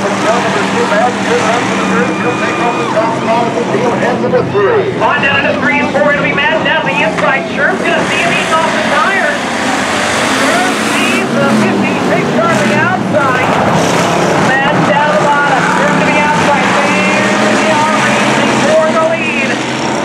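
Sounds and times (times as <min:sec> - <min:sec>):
voice over loudspeakers: 0:00.0 - 0:09.5, 0:10.4 - 0:13.6, 0:14.4 - 0:19.7
race car engines: 0:00.0 - 0:20.0.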